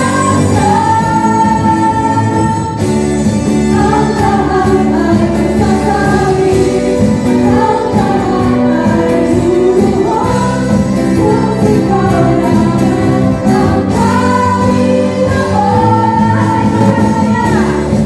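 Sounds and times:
women singing together: 0:00.0 - 0:02.9, 0:03.6 - 0:18.0
acoustic guitar: 0:00.0 - 0:18.0
drums: 0:00.0 - 0:18.0.

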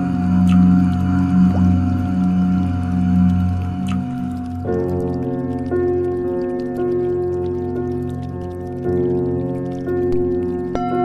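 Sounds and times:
meditation music: 0:00.0 - 0:10.1.

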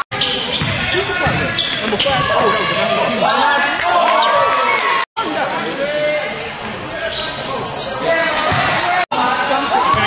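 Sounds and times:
basketball bouncing on hall floor: 0:00.2 - 0:02.6
players and spectators shouting: 0:00.2 - 0:06.4.

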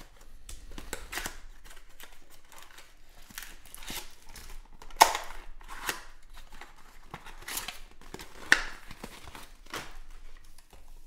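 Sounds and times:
cardboard snapping: 0:00.0 - 0:10.8.

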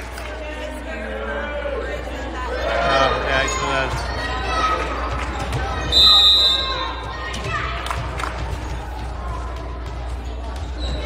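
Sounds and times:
referee whistle blast: 0:05.9 - 0:06.9.

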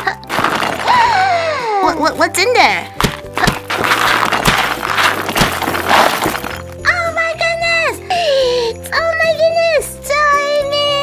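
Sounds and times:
plastic toys clattering onto floor: 0:00.1 - 0:01.0, 0:03.0 - 0:06.8.

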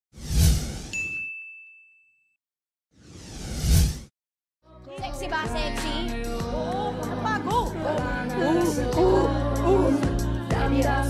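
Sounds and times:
bright ding: 0:00.9 - 0:02.4.

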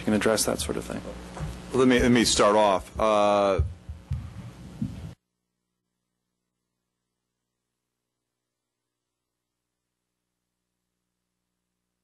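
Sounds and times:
faint low hum: 0:00.0 - 0:05.2
low muffled thumps: 0:02.8 - 0:05.2.

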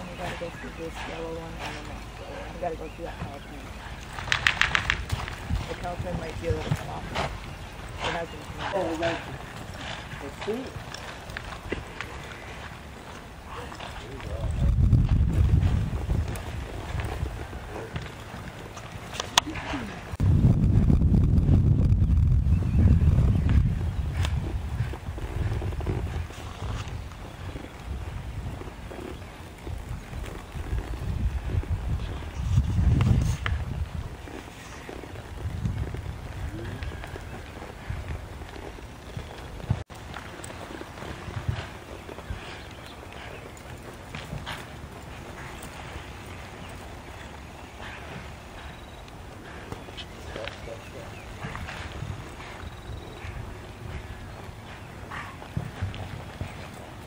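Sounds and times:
cattle movement: 0:00.0 - 0:57.0
hoof thuds on dirt: 0:00.0 - 0:57.0
low rumbling noise: 0:19.6 - 0:28.9.

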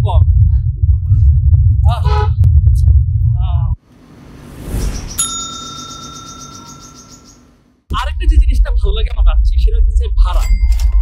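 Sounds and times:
bicycle bell ringing: 0:05.2 - 0:07.4
man's voice: 0:07.9 - 0:10.5.

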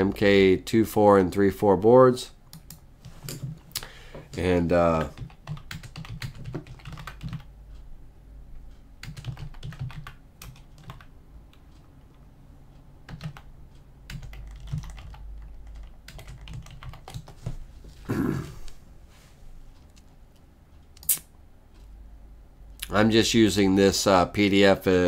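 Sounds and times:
typing on computer keyboard: 0:02.5 - 0:03.6, 0:05.0 - 0:07.5, 0:09.0 - 0:11.1, 0:13.0 - 0:13.5, 0:14.1 - 0:17.4.

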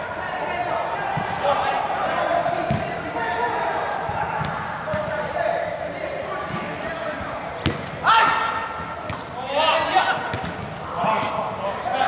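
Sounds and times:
player shouting: 0:00.0 - 0:05.6, 0:08.0 - 0:08.7
players chatting: 0:00.0 - 0:12.0
football kick thud: 0:02.6 - 0:03.0, 0:07.6 - 0:07.8.

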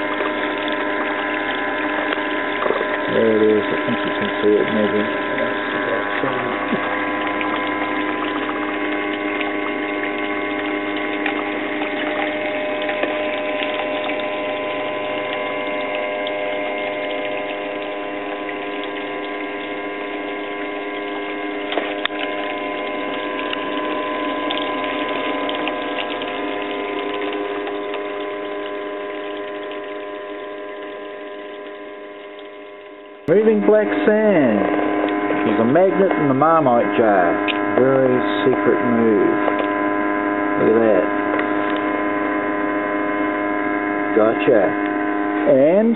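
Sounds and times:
water running over riffles: 0:00.0 - 0:39.8
water pump motor hum: 0:00.0 - 0:45.9.

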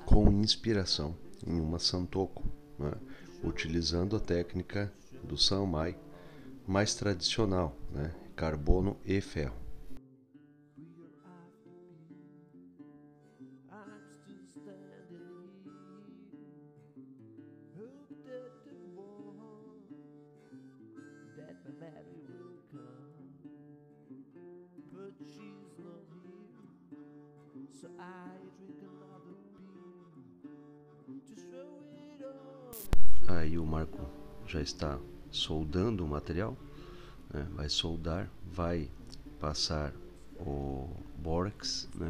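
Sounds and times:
plucked and strummed guitar music: 0:00.0 - 0:42.0.

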